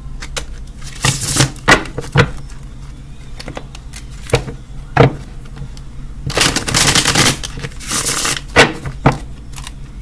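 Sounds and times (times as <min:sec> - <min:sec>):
cards being shuffled: 0:06.3 - 0:09.8.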